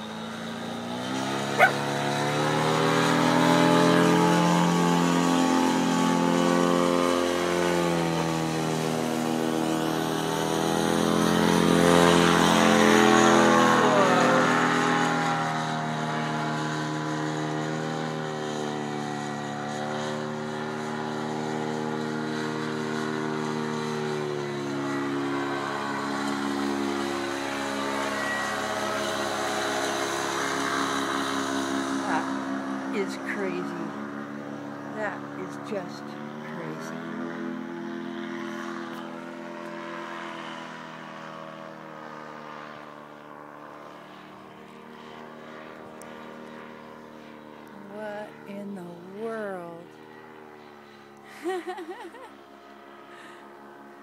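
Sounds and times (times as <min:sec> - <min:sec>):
paraglider engine droning overhead: 0:00.0 - 0:54.0.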